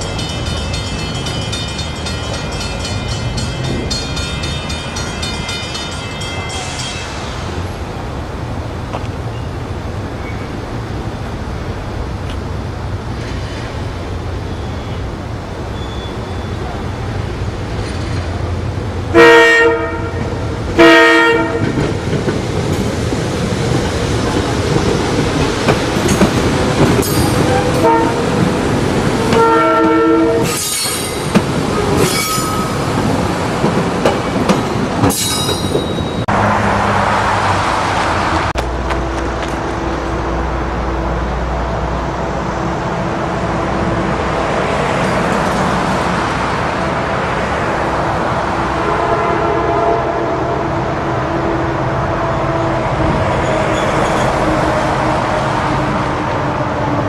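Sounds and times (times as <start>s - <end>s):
train low rumble: 0.0s - 57.0s
high wheel squeals: 15.7s - 17.0s
train air horn blasts: 19.1s - 21.8s, 27.5s - 28.3s, 29.3s - 30.7s, 48.7s - 50.9s
wheels clicking over rail joints: 21.5s - 36.1s.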